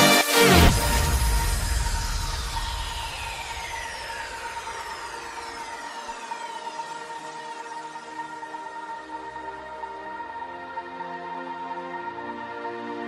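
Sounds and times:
falling synth sweep: 0:00.2 - 0:09.5
held synth tone: 0:00.7 - 0:08.0.

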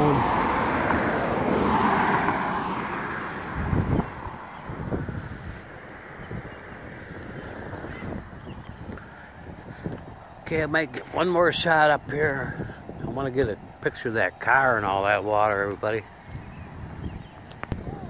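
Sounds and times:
car road and tyre noise: 0:00.0 - 0:18.0.

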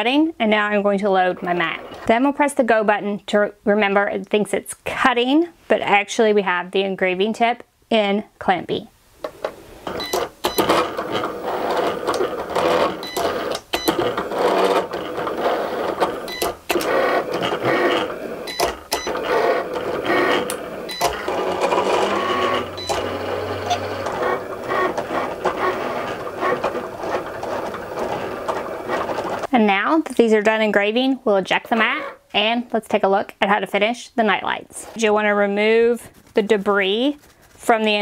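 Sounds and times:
cutting machine motors whirring: 0:09.9 - 0:29.5.

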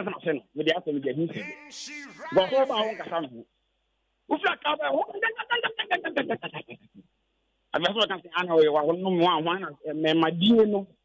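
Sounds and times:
man laughing over telephone: 0:01.4 - 0:03.1.

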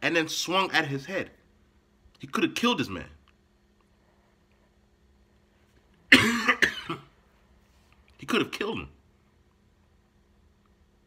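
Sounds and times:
man coughing: 0:06.1 - 0:07.2.

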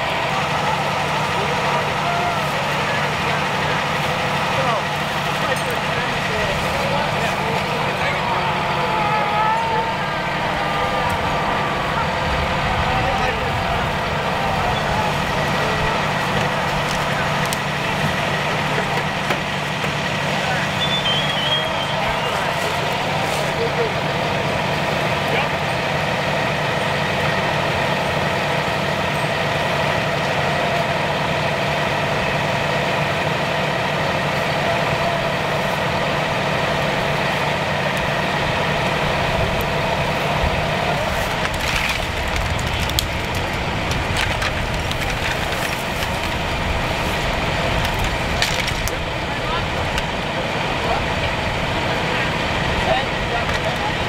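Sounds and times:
engines idling: 0:00.0 - 0:54.0
faint voices: 0:00.0 - 0:54.0.

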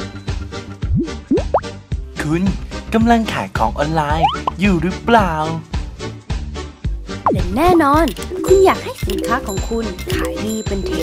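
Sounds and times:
rising cartoon bloop effects: 0:00.9 - 0:01.7, 0:04.2 - 0:04.5
background music with a beat: 0:05.5 - 0:11.0
person speaking: 0:07.4 - 0:11.0.

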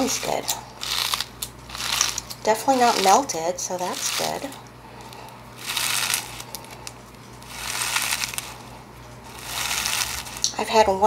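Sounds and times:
crunchy slime squished by hand: 0:00.0 - 0:10.6.

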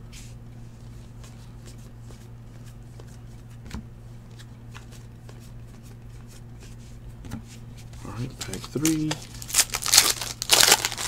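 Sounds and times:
low steady hum: 0:00.0 - 0:11.0
trading cards flipped by hand: 0:08.4 - 0:11.0.

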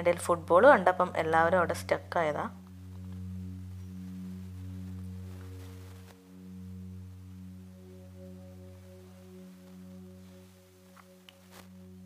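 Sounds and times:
synth drone chord: 0:01.8 - 0:12.0.

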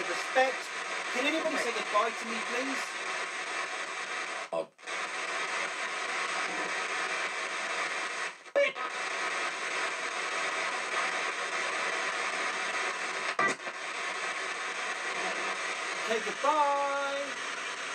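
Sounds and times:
radio static hiss: 0:00.0 - 0:17.9
snatches of radio broadcast: 0:00.0 - 0:17.9.

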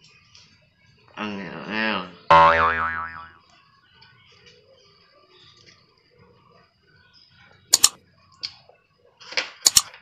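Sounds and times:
cartoon boing sound effect: 0:02.3 - 0:03.4.

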